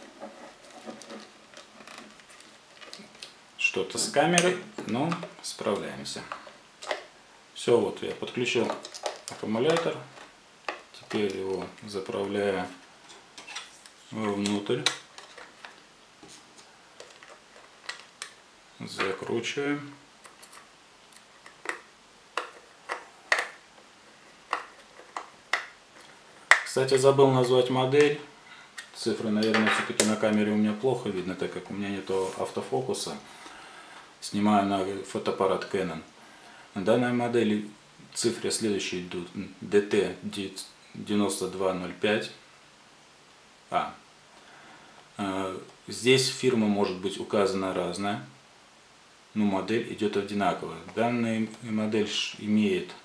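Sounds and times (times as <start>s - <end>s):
plastic case handled: 0.0s - 3.4s, 8.6s - 11.8s, 14.8s - 18.4s.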